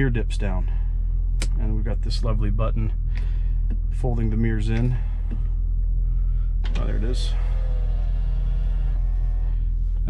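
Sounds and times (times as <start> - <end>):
low rumble: 0.0 - 10.0
mirror motors whining: 6.6 - 10.0.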